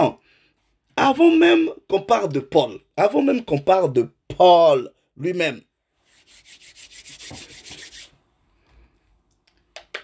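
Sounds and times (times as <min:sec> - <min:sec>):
hand rubbing beard: 0:06.0 - 0:08.2.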